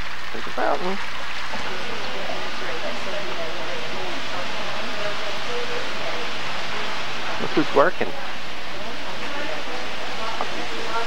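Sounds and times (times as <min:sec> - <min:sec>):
steady rushing hiss: 0:00.0 - 0:11.0
faint chatter of people: 0:01.4 - 0:11.0.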